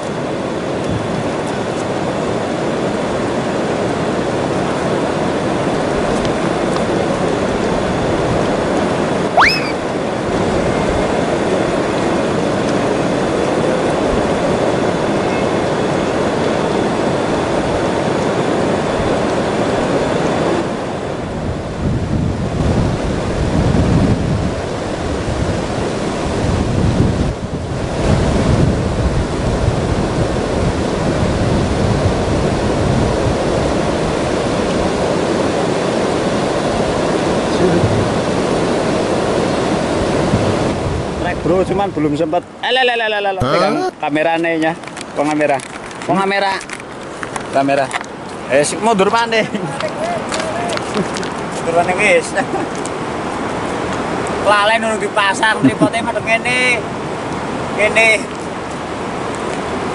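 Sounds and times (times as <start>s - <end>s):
wind buffeting microphone: 0.0s - 42.6s
fast-flowing river: 0.0s - 59.9s.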